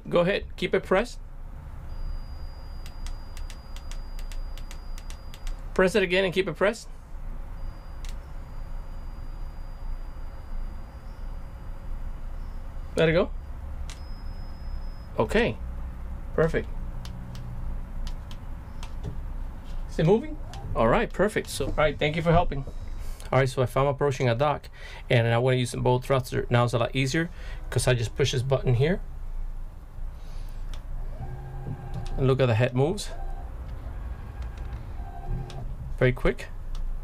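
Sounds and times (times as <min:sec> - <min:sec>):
low steady hum: 0:00.0 - 0:37.0
faint high-pitched tone: 0:01.8 - 0:05.4, 0:07.5 - 0:15.6.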